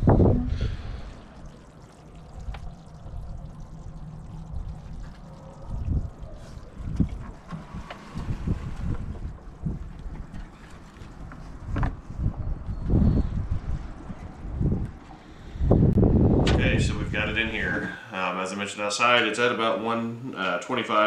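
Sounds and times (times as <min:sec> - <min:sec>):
wind buffeting microphone: 0:00.0 - 0:00.8, 0:02.3 - 0:17.9.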